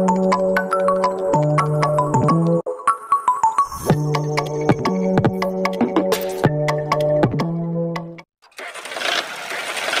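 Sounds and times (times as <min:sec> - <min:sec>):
background music: 0:00.0 - 0:08.3.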